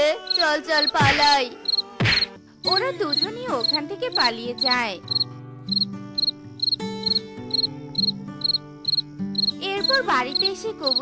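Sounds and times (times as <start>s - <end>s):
crickets chirping: 0.0s - 11.0s
soft background music: 0.0s - 11.0s.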